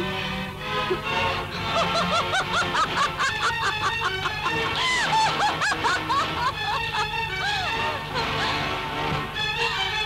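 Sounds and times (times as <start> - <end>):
film score music: 0.0 - 10.0
woman laughing high-pitched: 1.8 - 8.6.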